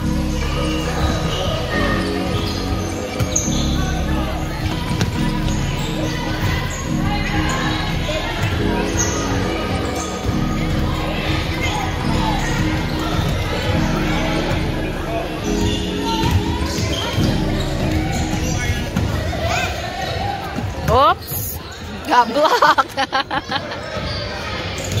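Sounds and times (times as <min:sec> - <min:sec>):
light background music: 0:00.0 - 0:19.6
children's voices in a large hall: 0:00.0 - 0:25.0
basketballs bouncing on hardwood floor: 0:04.6 - 0:05.6, 0:15.6 - 0:19.4.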